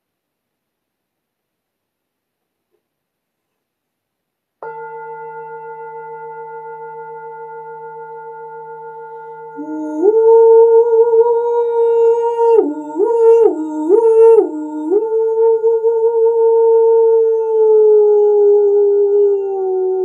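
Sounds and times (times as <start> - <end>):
singing bowl ringing: 4.6 - 14.3
woman toning sustained ooo: 9.0 - 20.0.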